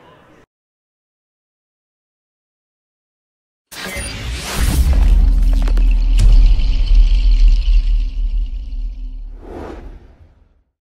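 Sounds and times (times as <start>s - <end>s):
brief whoosh: 9.2s - 10.5s.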